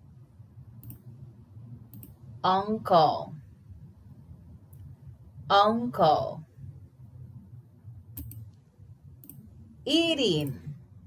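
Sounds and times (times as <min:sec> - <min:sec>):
computer mouse clicks: 0:00.8 - 0:01.1, 0:01.9 - 0:02.2, 0:08.2 - 0:08.6, 0:09.2 - 0:09.5.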